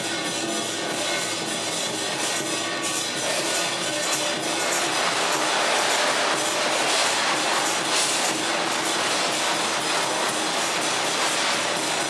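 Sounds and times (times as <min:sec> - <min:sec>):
procession percussion music: 0:00.0 - 0:12.0.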